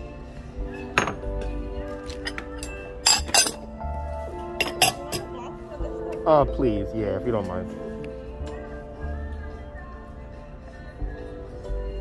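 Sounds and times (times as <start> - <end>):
background music: 0.0 - 12.0
ceramic dishes clinking: 0.8 - 1.4, 2.3 - 3.7, 4.6 - 5.4.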